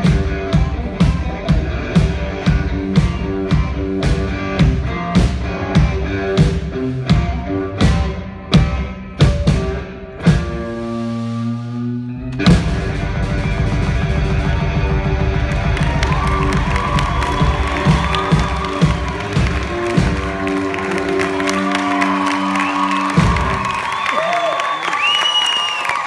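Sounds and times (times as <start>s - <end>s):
blues guitar: 0.0s - 24.0s
audience cheering and whooping: 14.3s - 26.0s.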